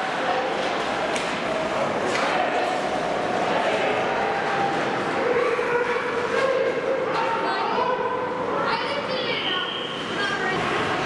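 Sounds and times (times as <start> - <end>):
arena background noise: 0.0 - 11.0
people shouting in an arena: 1.6 - 8.4.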